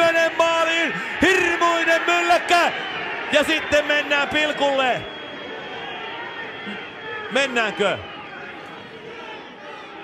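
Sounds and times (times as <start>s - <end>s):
murmur of stadium crowd: 0.0s - 10.0s.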